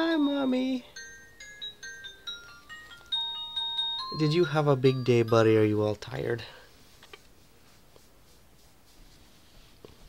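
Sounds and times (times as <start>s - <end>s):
bell-like chime melody: 0.0s - 6.3s.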